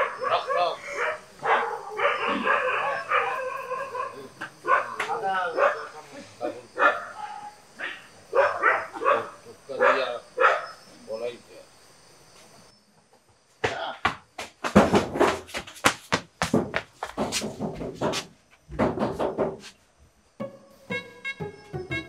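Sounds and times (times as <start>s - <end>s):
dog barking: 0.0s - 10.8s
men talking: 0.2s - 1.2s, 3.3s - 7.0s, 9.0s - 10.3s, 10.9s - 11.6s.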